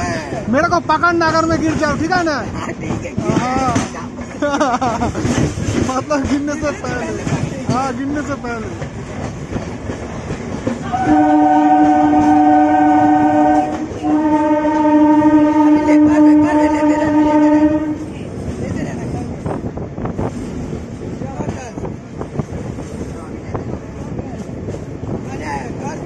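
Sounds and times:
train wheels clacking on rails: 0.0s - 26.0s
train horn blasts: 10.8s - 18.1s.

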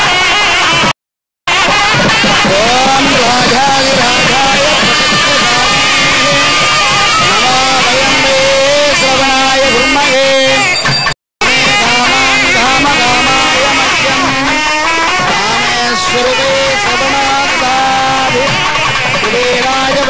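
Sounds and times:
reedy wind melody: 1.6s - 10.8s, 11.4s - 19.2s
steady held drone: 2.4s - 10.0s, 11.5s - 18.8s.

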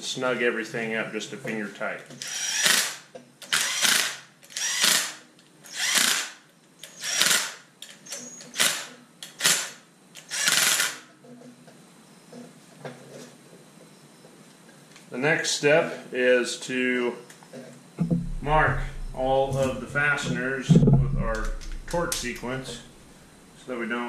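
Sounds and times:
cordless impact driver bursts: 2.2s - 7.6s, 8.2s - 11.0s.

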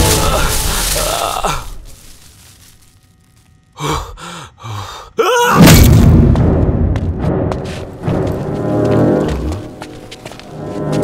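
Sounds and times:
man gasping for breath: 3.8s - 5.2s
booming film score hit: 5.6s - 8.2s.

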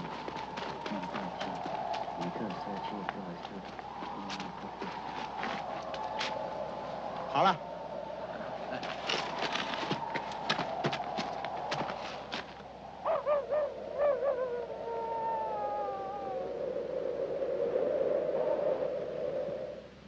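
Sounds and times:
eerie wavering wail: 0.0s - 18.9s
wooden staves clacking: 8.7s - 12.6s.

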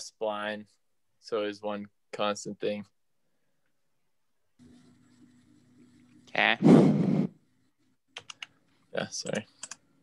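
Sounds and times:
computer keyboard clicks: 8.2s - 8.5s, 9.6s - 9.8s.

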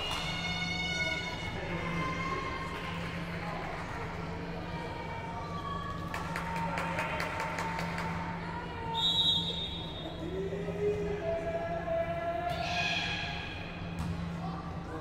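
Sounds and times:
sharp claps or ball bounces: 0.0s - 0.5s, 6.0s - 8.4s
players calling and shouting: 0.0s - 3.3s, 5.2s - 15.0s
low hum in gym: 0.0s - 15.0s
referee's whistle blast: 9.0s - 10.0s.

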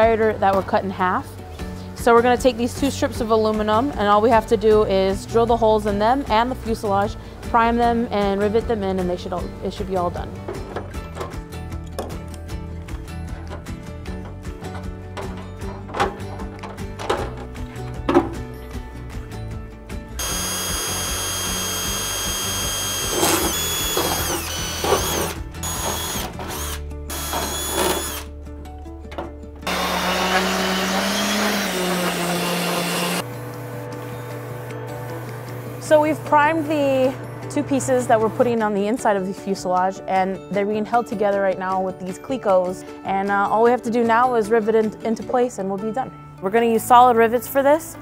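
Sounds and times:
background music: 0.0s - 48.0s
cordless drill drilling metal: 20.2s - 28.3s, 29.6s - 33.2s.

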